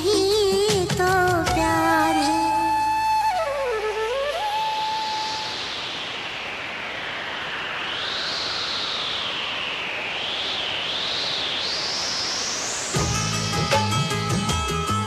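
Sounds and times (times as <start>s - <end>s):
rising wavering noise sweep: 2.2s - 14.9s.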